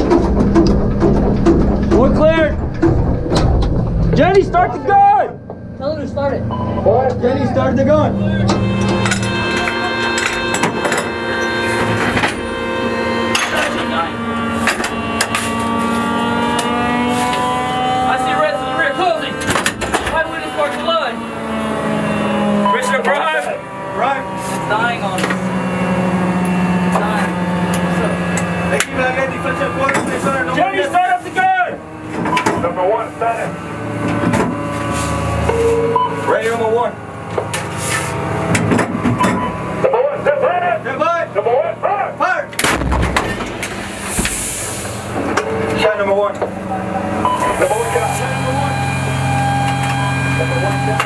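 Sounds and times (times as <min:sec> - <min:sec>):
metal clanks and knocks: 0:00.0 - 0:05.8, 0:08.4 - 0:12.7, 0:13.3 - 0:15.9, 0:38.4 - 0:39.7
vehicle mechanical hum: 0:00.0 - 0:51.0
voices: 0:04.1 - 0:34.6, 0:35.4 - 0:38.2, 0:39.2 - 0:42.6, 0:45.2 - 0:51.0.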